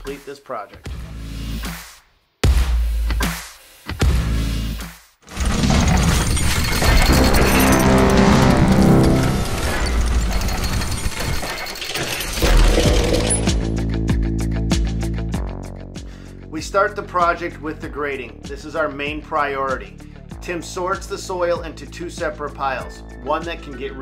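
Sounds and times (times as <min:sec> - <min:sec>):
crashing shattering effects: 0:05.3 - 0:13.7
loud electronic music: 0:06.8 - 0:10.6
heavy low hit: 0:06.8 - 0:10.8.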